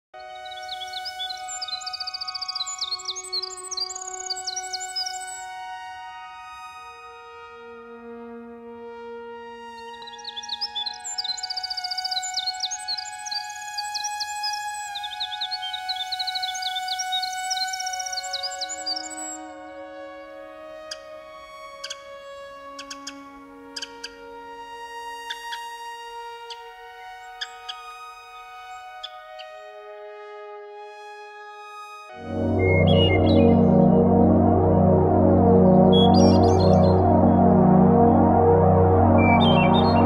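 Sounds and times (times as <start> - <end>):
wren trilling song: 0.2 - 6.9, 9.2 - 40.0
ambient music of held tones: 0.2 - 40.0.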